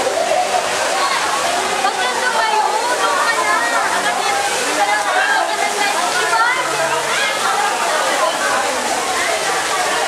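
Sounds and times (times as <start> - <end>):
waterfall pouring: 0.0 - 10.0.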